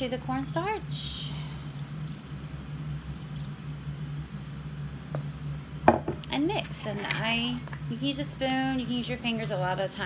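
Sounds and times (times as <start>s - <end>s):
steady low hum: 0.0s - 10.0s
glass cup set down on counter: 5.9s - 6.2s.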